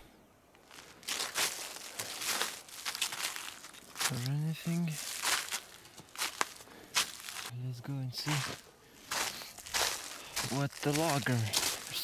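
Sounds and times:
footsteps crunching through dry leaves: 0:00.6 - 0:07.6, 0:08.2 - 0:12.0.

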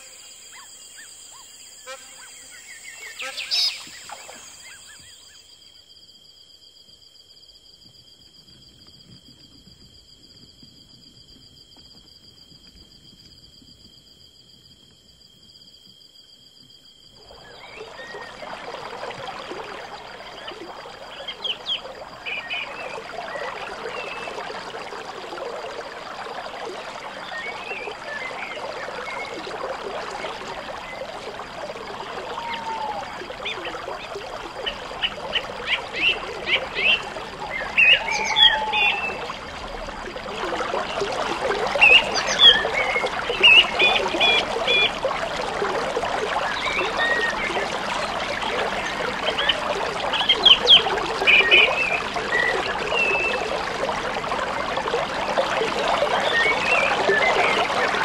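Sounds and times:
water trickling: 0:16.2 - 0:58.0
chirping calls: 0:32.0 - 0:39.3.

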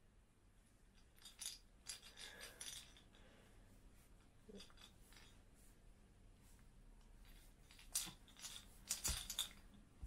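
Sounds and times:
baby rattle shaking: 0:01.1 - 0:03.1, 0:07.6 - 0:09.6.

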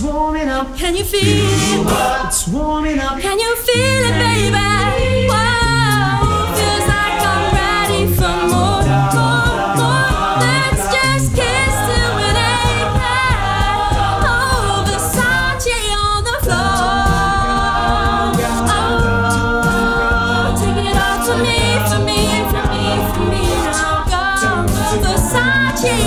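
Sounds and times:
beatboxed percussion: 0:01.0 - 0:02.6, 0:03.7 - 0:26.0
vocal bass line: 0:01.1 - 0:26.0
sung backing chords: 0:03.8 - 0:15.7, 0:16.5 - 0:26.0
lead voice singing runs: 0:03.8 - 0:26.0.

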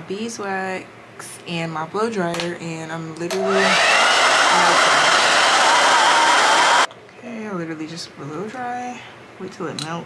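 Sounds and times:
hair dryer blowing: 0:03.3 - 0:06.9.

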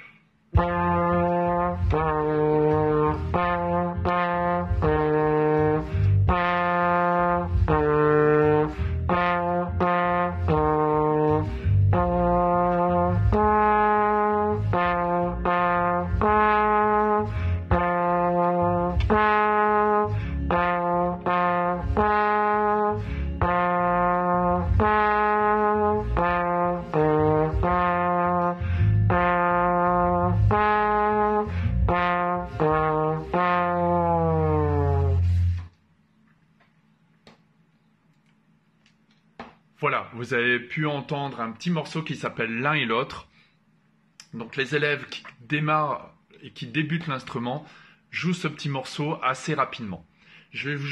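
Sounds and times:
plastic trombone melody: 0:00.0 - 0:35.8.

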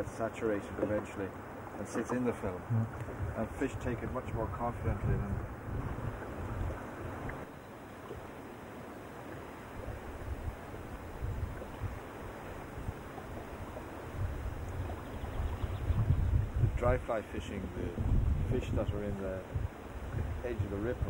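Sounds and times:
small waves rushing: 0:00.0 - 0:21.0
wind buffeting microphone: 0:02.6 - 0:07.5, 0:09.8 - 0:21.0.

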